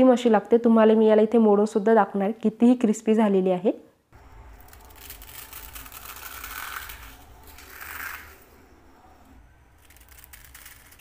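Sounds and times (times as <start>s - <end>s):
crisp fried snack crackling: 4.5s - 8.4s, 9.8s - 11.0s.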